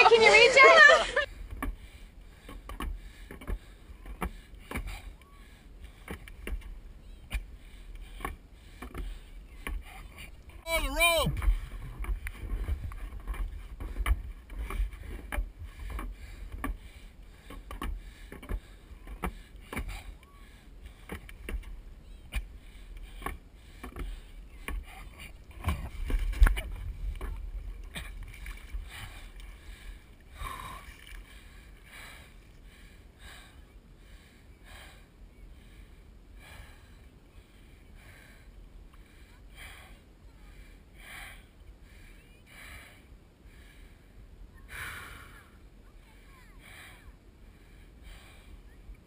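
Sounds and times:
water lapping and sloshing: 11.3s - 33.1s.

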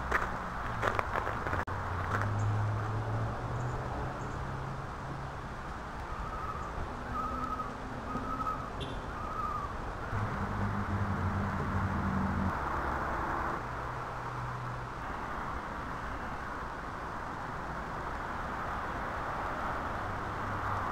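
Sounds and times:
low vehicle engine hum: 0.0s - 13.8s
bird calling: 6.1s - 9.8s.

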